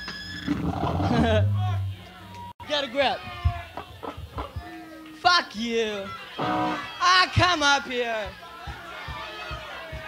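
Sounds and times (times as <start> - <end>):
people shouting: 6.0 - 10.0
held guitar notes: 6.4 - 7.0.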